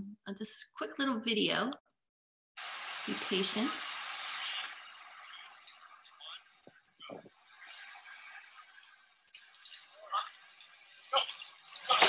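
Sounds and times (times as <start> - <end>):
muffled video soundtrack: 2.6 - 12.0
muffled voices: 3.0 - 5.6.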